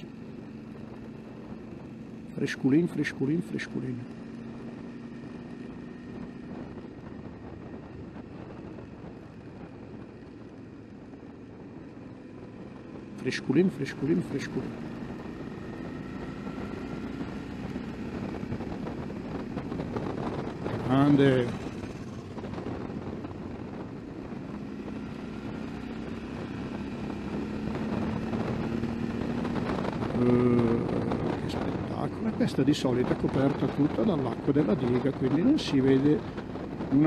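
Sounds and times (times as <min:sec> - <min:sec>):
motorcycle engine running: 0:00.0 - 0:37.0
wind noise on microphone: 0:03.9 - 0:13.2, 0:14.6 - 0:37.0.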